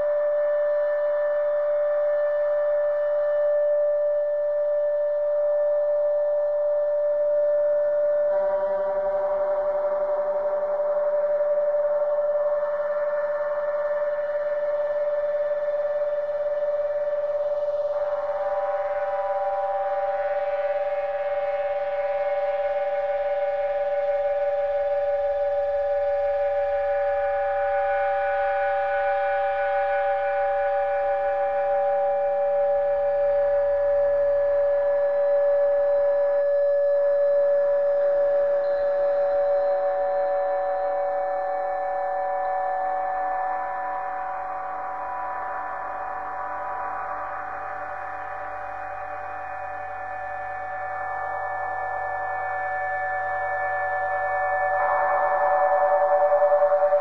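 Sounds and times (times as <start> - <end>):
drone music sustained tones: 38.8 - 57.0.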